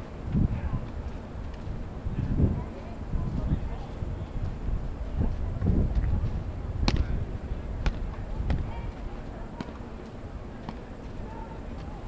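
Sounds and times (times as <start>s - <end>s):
wind rumble on microphone: 0.0s - 9.4s
tennis balls struck and bouncing: 6.8s - 7.1s, 10.6s - 10.9s.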